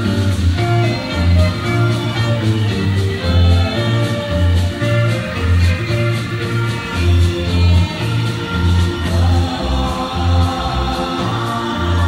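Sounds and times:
pulsing bass line: 0:00.0 - 0:12.0
small band playing: 0:00.0 - 0:12.0
people singing in chorus: 0:02.8 - 0:04.7, 0:07.2 - 0:12.0.

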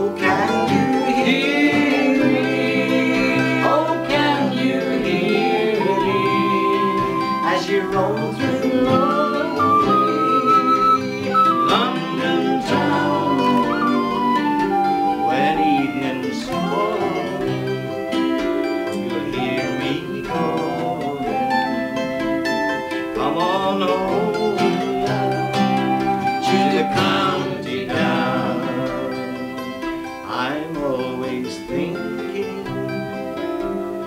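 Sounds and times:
acoustic guitar strumming: 0:00.0 - 0:34.0
plucked string instrument: 0:00.0 - 0:34.0
tin whistle melody: 0:00.0 - 0:34.0.

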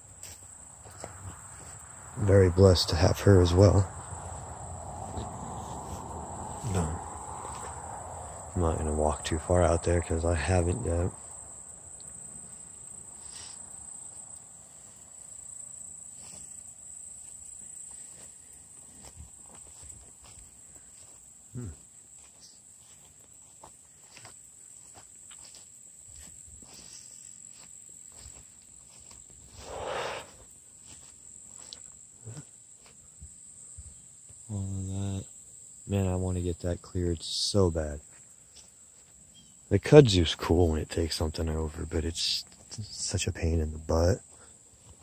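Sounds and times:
footsteps through tall grass: 0:00.0 - 0:08.4, 0:12.7 - 0:33.0, 0:44.2 - 0:45.0
high-pitched insect chorus: 0:00.0 - 0:45.0.

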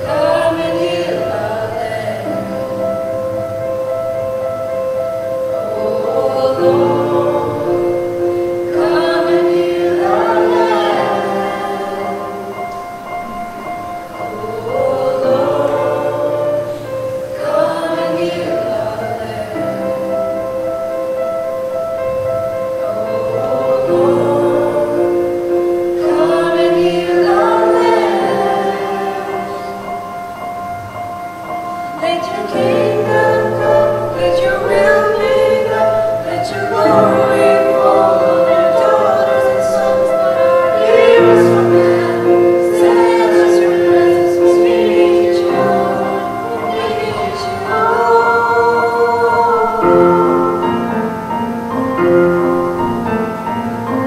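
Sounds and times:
group singing a worship song: 0:00.0 - 0:31.0, 0:31.7 - 0:52.9.

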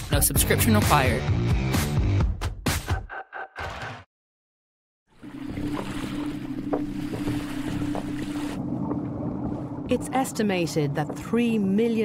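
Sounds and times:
boat engine humming: 0:05.2 - 0:12.0
water washing: 0:05.2 - 0:12.0.

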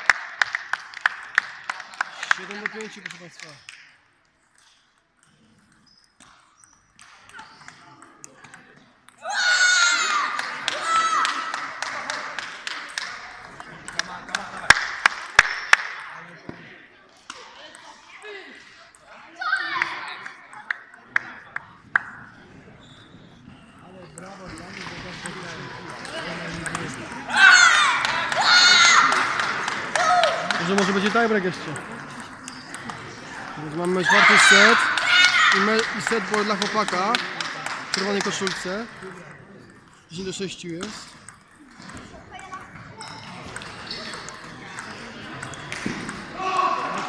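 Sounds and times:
loud voices in a hall: 0:07.0 - 0:47.0.

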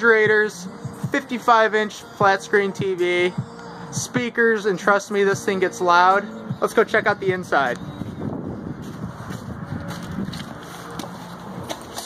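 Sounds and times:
wind blowing on microphone: 0:07.1 - 0:10.7.

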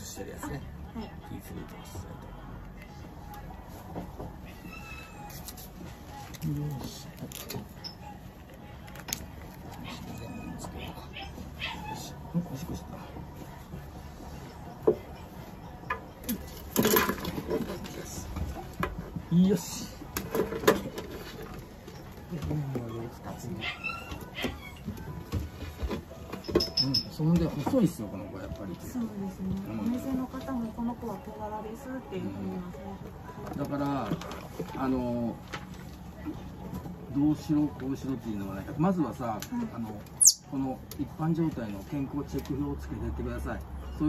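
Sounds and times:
ground squirrel squeak: 0:04.4 - 0:05.7, 0:09.8 - 0:12.2, 0:22.9 - 0:25.0, 0:40.2 - 0:40.6.

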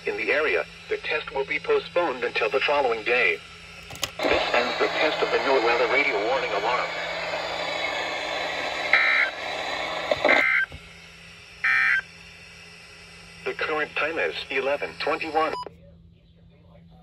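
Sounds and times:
radio broadcast voice: 0:00.0 - 0:03.4, 0:04.2 - 0:10.5, 0:13.4 - 0:17.0
radio hiss: 0:00.0 - 0:10.8, 0:11.6 - 0:15.7
shrill two-tone data bursts: 0:05.8 - 0:10.7, 0:11.6 - 0:12.1.

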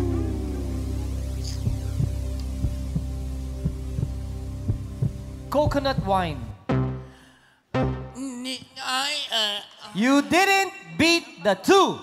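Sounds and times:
low held chord: 0:00.0 - 0:05.5
heartbeat-like low thump: 0:01.5 - 0:06.2.

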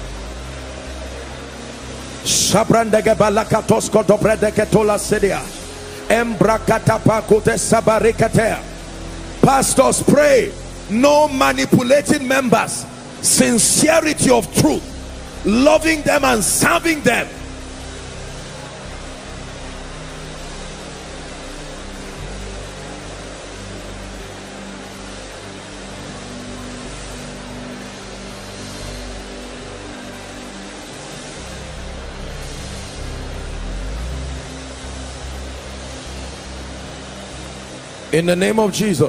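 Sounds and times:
soft keyboard pad chords: 0:00.0 - 0:39.0
congregation praying aloud: 0:02.3 - 0:05.5, 0:09.4 - 0:17.4.

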